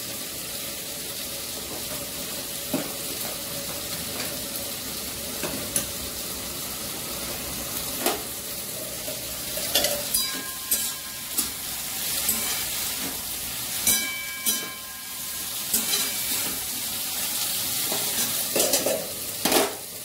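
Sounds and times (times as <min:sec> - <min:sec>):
vegetables sizzling in oil: 0:00.0 - 0:20.0
metal spoon clinking on pan: 0:09.6 - 0:16.6.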